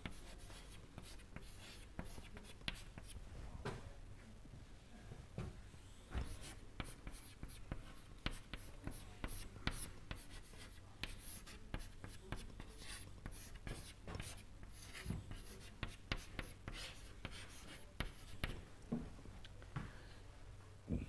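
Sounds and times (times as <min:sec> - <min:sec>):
chalk writing on a chalkboard: 0:00.0 - 0:03.2, 0:06.2 - 0:18.6.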